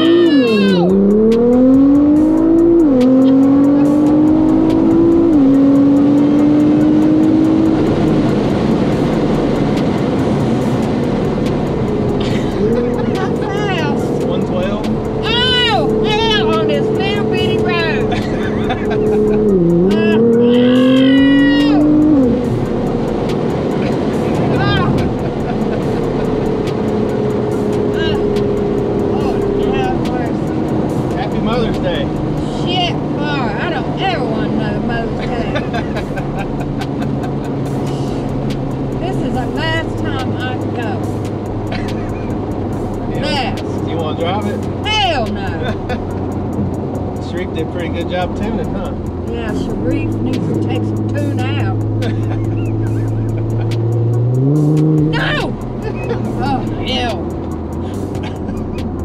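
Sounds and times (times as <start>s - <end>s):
woman shrieking and exclaiming: 0.0s - 1.0s, 20.4s - 21.9s
car engine accelerating: 0.0s - 59.0s.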